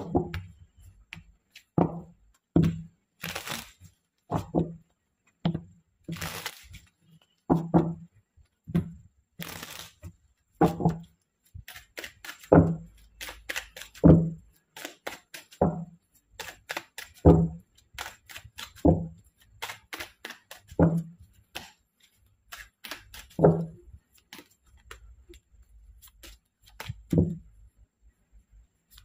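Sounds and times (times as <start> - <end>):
cards riffling: 3.2 - 3.8, 6.1 - 6.9, 9.4 - 10.1, 11.6 - 14.0, 14.6 - 15.6, 16.2 - 17.3, 17.9 - 20.8, 21.5 - 23.4, 25.8 - 27.2.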